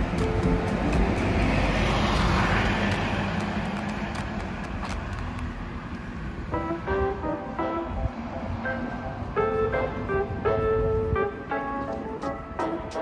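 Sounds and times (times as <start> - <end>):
vehicle passing by: 0.0 - 10.9.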